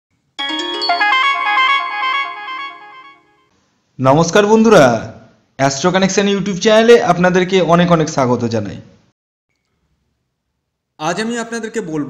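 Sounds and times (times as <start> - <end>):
electronic chime jingle: 0.4 - 3.5.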